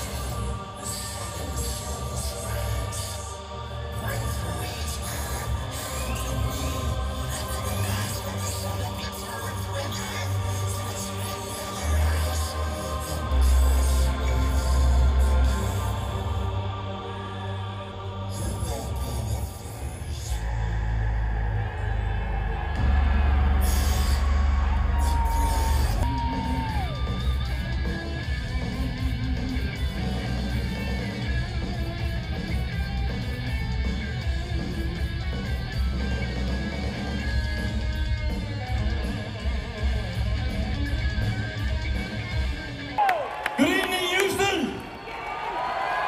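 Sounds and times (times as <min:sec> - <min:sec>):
loud live concert music: 0:00.0 - 0:16.6, 0:18.3 - 0:44.9
heavy steady bass: 0:20.0 - 0:42.6
heavy metal band playing live: 0:22.7 - 0:43.0.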